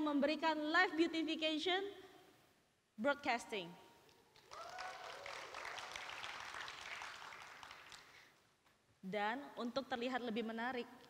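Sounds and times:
audience applauding: 4.4s - 8.3s.

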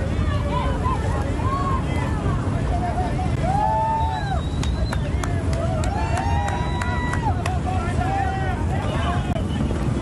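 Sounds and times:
crowd shouting: 0.0s - 9.9s
wind buffeting microphone: 0.0s - 10.0s.

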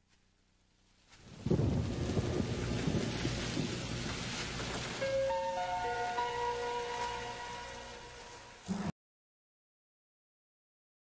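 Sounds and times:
rain hiss: 0.0s - 8.9s
crackling rumble of thunder: 1.1s - 8.3s.

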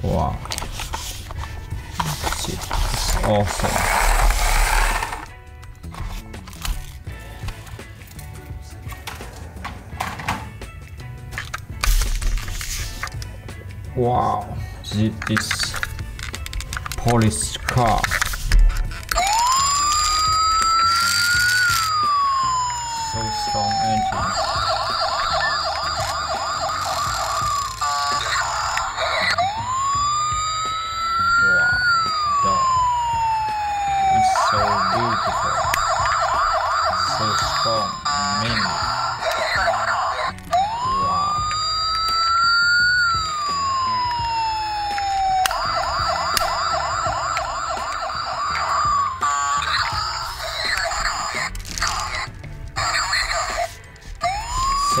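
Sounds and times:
toy police siren warbling and wailing: 2.2s - 5.3s, 19.1s - 55.0s
plastic toy handling clicks: 15.2s - 19.3s.

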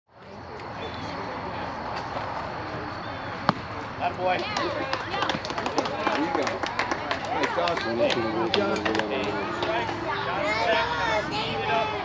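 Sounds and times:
faint open-air background noise: 0.1s - 12.0s
bat hitting ball crack: 3.4s - 3.7s.

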